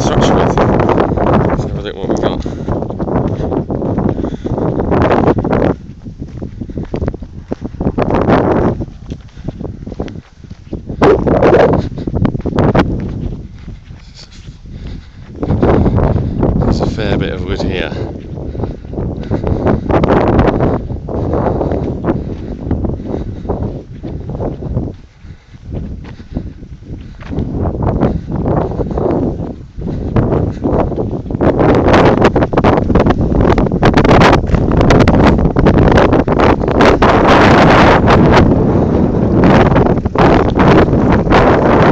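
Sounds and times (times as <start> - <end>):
wind buffeting microphone: 0.0 - 41.9.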